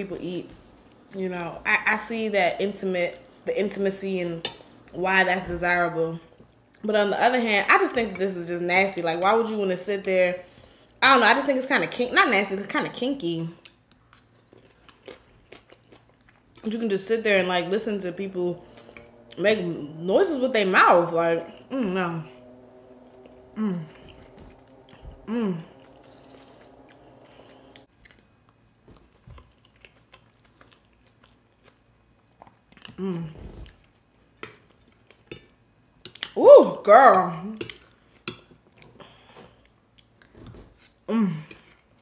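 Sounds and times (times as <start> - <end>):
faint chewing of food: 13.6 - 16.7, 22.7 - 33.0.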